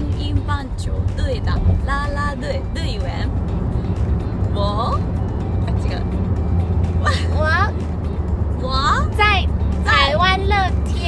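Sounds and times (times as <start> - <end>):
woman's voice: 0.0 - 3.3, 4.5 - 5.0
background music: 0.0 - 11.0
car interior rumble: 0.0 - 11.0.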